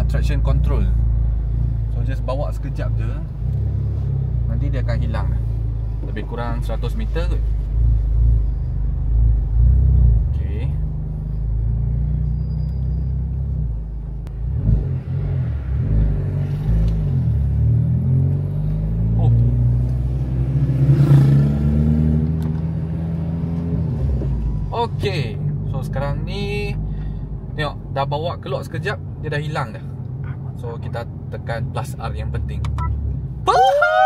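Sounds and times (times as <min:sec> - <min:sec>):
car engine heard from cabin: 0:00.0 - 0:34.0.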